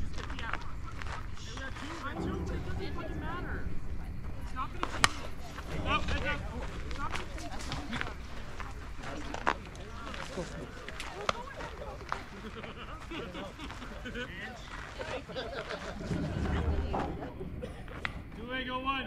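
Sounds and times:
voices calling out: 0.0 - 19.0
bat hitting softball: 3.6 - 8.7.

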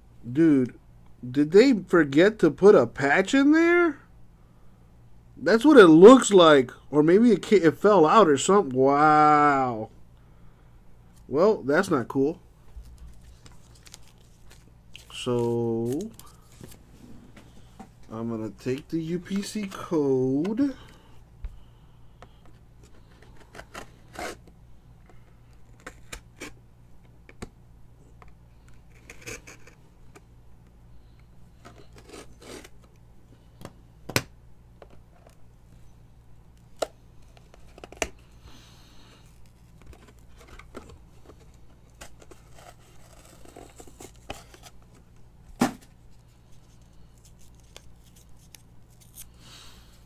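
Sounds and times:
cardboard tearing and rustling: 12.9 - 16.7, 39.9 - 44.8.

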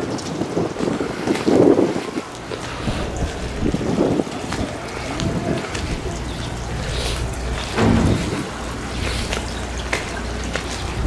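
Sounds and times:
water pouring from a pipe: 0.0 - 11.0
wind buffeting microphone: 0.0 - 11.0.

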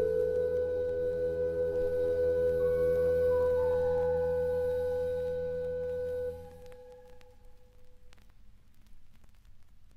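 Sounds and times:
faint hiss: 0.0 - 9.9.

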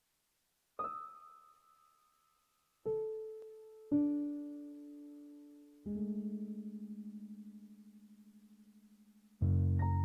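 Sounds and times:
electric piano chords: 0.8 - 2.0, 2.8 - 10.0.

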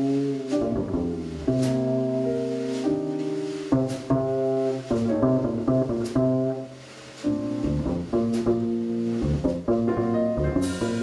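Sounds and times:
upright double bass: 0.0 - 11.0
keyboard chords: 9.8 - 11.0.

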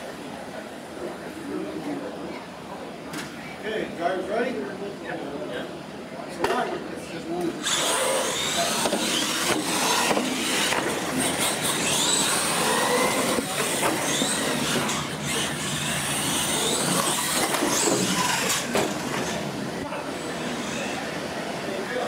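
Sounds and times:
tyres on concrete floor: 7.6 - 21.0
toy truck motors whining: 7.6 - 21.3.

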